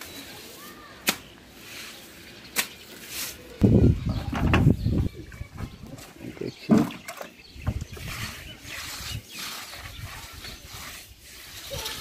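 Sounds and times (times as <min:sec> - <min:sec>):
broom swishing: 0:00.0 - 0:03.6, 0:08.0 - 0:12.0
wet broom slapping: 0:00.0 - 0:03.6.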